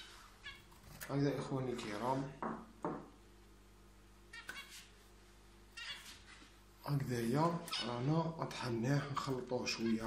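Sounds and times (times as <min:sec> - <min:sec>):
high-pitched animal calls: 0:04.3 - 0:04.9, 0:05.8 - 0:06.3.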